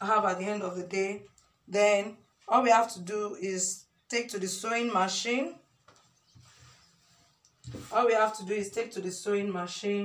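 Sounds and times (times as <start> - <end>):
woman speaking: 0.0 - 5.6, 7.8 - 10.0.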